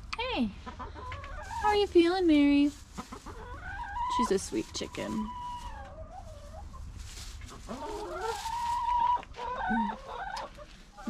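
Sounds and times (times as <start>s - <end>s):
hens calling: 0.6s - 11.0s.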